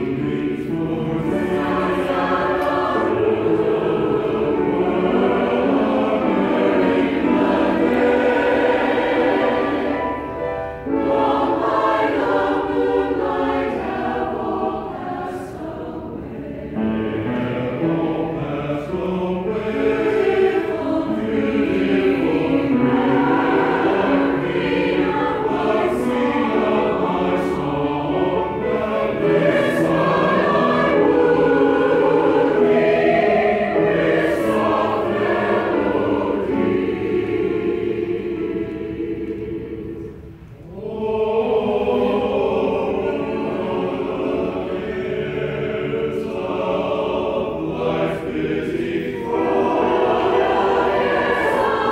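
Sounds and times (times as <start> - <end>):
men's choir singing in parts: 0.0 - 51.9.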